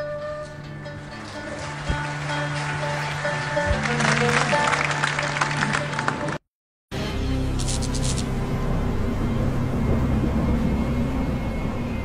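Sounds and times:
deep rumbling drone: 0:07.0 - 0:12.0.

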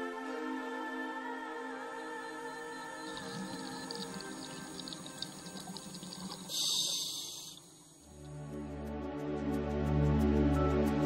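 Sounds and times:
soft background music: 0:00.0 - 0:06.5, 0:08.0 - 0:11.0
hiss of exhaled bubbles: 0:02.9 - 0:08.2.

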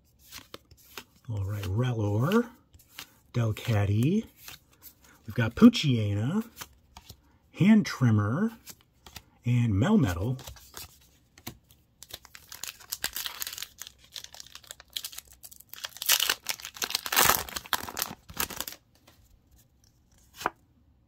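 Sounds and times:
foil wrapper tearing and crinkling: 0:12.1 - 0:18.8.

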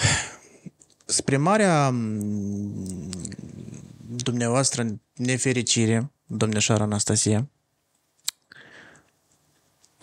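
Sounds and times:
man's drawn-out uhh: 0:02.0 - 0:04.0.

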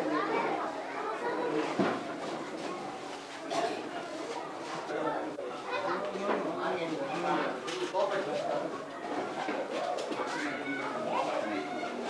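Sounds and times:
young children talking: 0:00.0 - 0:12.0.

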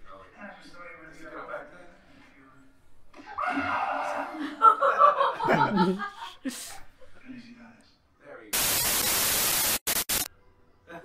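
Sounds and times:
static hiss burst: 0:08.5 - 0:10.3
static crackles: 0:08.6 - 0:10.3.

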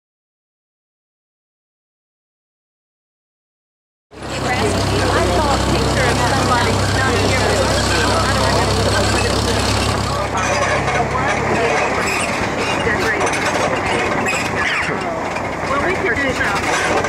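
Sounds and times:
people talking: 0:04.2 - 0:17.0
tractor engine running: 0:04.2 - 0:17.0.

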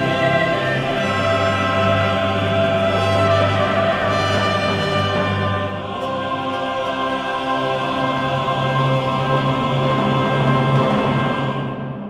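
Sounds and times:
baroque orchestra: 0:00.0 - 0:12.0
choir singing held chords: 0:00.0 - 0:12.0.

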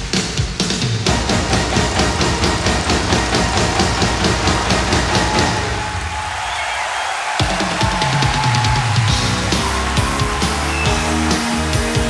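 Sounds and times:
cymbals keeping fast pulse: 0:01.0 - 0:07.0
live band music: 0:09.1 - 0:12.0.

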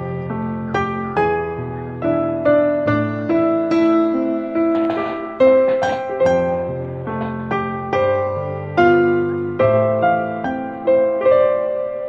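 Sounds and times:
slow gentle piano melody: 0:00.0 - 0:12.0.

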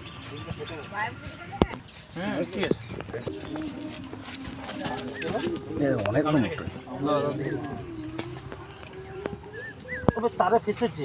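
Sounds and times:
dove cooing: 0:07.1 - 0:10.4.

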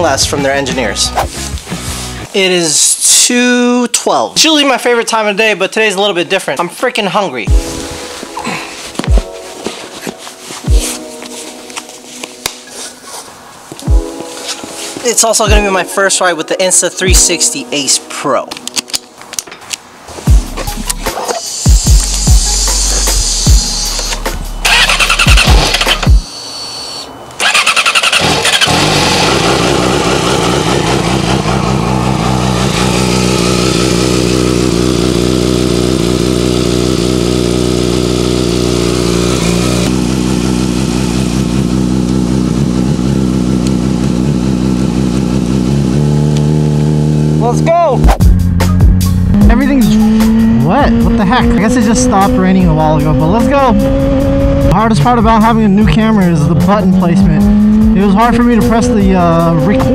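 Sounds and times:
motorcycle engine idling and revving: 0:21.7 - 0:26.4, 0:27.4 - 0:59.9.

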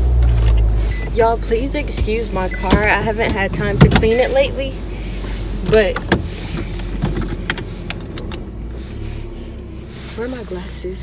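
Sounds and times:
low hum inside car cabin: 0:00.0 - 0:11.0.

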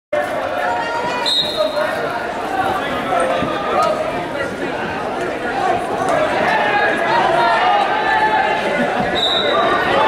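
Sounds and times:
people talking in a hall: 0:00.2 - 0:10.0
high-pitched whistle: 0:09.2 - 0:09.6.

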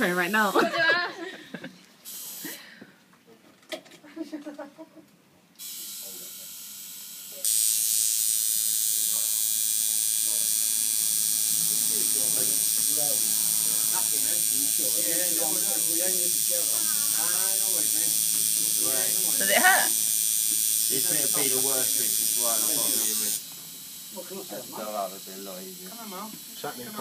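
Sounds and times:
electric tattoo machine buzzing: 0:02.0 - 0:02.6, 0:05.6 - 0:27.0.

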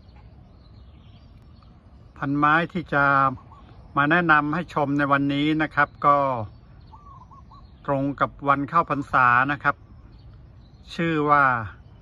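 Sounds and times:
bird calling faintly: 0:00.0 - 0:12.0
man talking: 0:02.1 - 0:06.6, 0:07.8 - 0:09.8, 0:10.8 - 0:11.9.

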